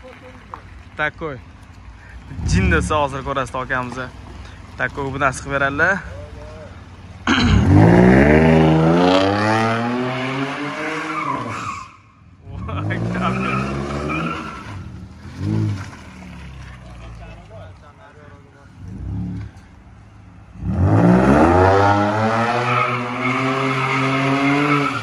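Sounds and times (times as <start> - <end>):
tyres squealing and skidding: 5.4 - 25.0
car engine revving hard: 7.3 - 11.6, 12.6 - 16.0, 20.5 - 25.0.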